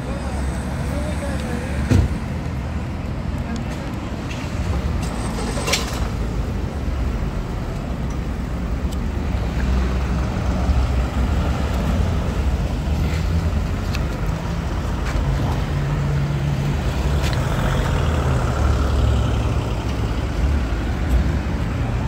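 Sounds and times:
vehicle engines droning in traffic: 0:00.0 - 0:22.0.

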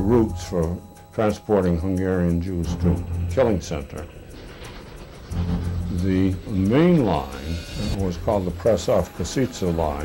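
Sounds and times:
low steady tone: 0:00.0 - 0:09.2
soft background music: 0:00.0 - 0:10.0
steam train rumble: 0:02.6 - 0:10.0.

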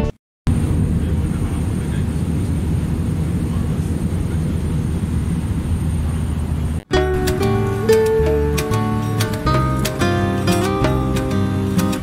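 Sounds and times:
airliner cabin engine rumble: 0:00.5 - 0:06.8.

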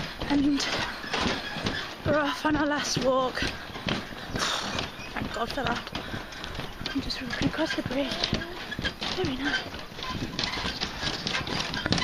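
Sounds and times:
footsteps on footbridge deck: 0:00.0 - 0:12.0.

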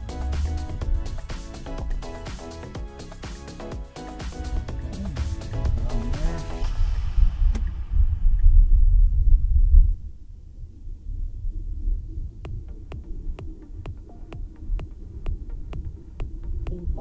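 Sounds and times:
sharp ticking beats: 0:00.0 - 0:06.8, 0:12.3 - 0:17.0
melodic electronic notes: 0:00.0 - 0:07.2
heavy bass line: 0:00.0 - 0:10.2, 0:11.1 - 0:17.0.

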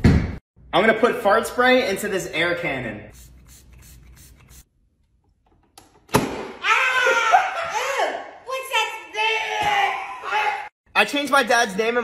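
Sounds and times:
voice: 0:07.7 - 0:12.0.

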